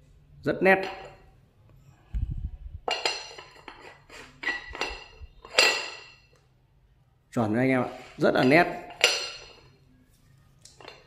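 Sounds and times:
porcelain bowl clinking on plate: 2.8s - 6.3s, 8.4s - 9.7s.

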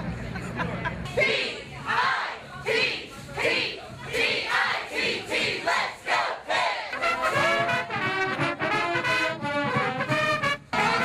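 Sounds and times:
cheerleaders chanting: 1.1s - 7.8s.

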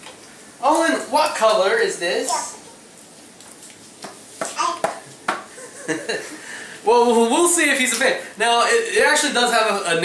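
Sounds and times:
toddler vocal sounds: 4.4s - 5.0s.

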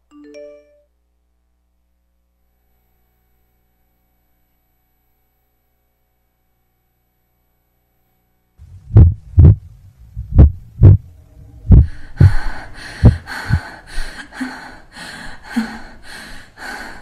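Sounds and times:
rhythmic hissing pulse: 8.6s - 14.0s
heartbeat thumps: 8.6s - 14.1s.

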